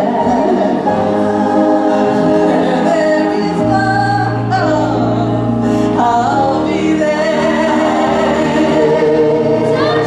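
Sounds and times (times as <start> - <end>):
people singing in harmony: 0.0 - 10.0.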